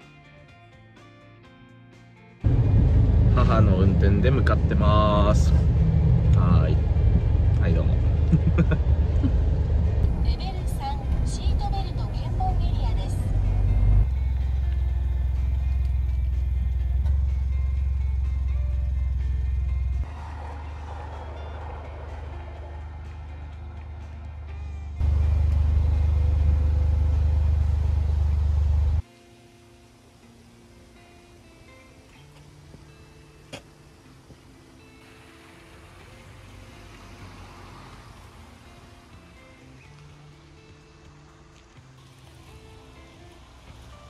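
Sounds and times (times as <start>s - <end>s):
music: 0.0s - 5.6s, 6.4s - 26.1s, 29.0s - 44.0s
car interior rumble: 2.4s - 29.0s
voices: 10.2s - 13.4s.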